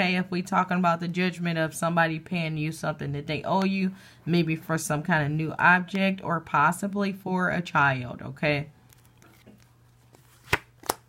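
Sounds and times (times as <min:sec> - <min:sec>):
card snaps: 0:08.9 - 0:11.0
cards shuffling: 0:08.9 - 0:11.0.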